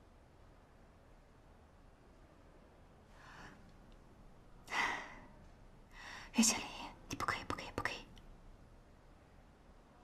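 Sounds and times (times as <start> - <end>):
person whispering: 6.2 - 8.2.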